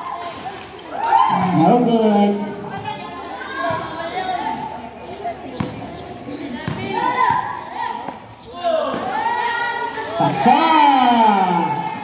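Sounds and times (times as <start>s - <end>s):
children and onlookers talking: 0.0s - 12.0s
basketball bouncing on concrete: 5.5s - 7.5s.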